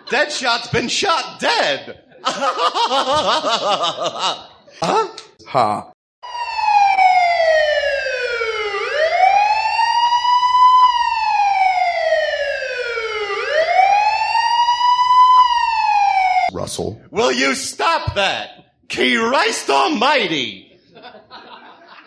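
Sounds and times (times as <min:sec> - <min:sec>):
police siren wailing: 0:06.2 - 0:16.5.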